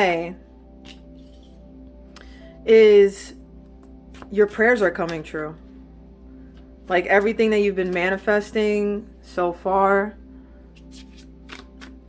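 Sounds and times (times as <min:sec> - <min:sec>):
cards being shuffled: 0:10.8 - 0:12.0.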